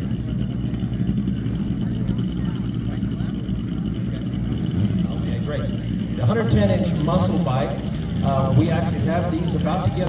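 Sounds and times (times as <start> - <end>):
faint people talking: 0.0 - 10.0
low pulsing engine drone: 0.0 - 10.0.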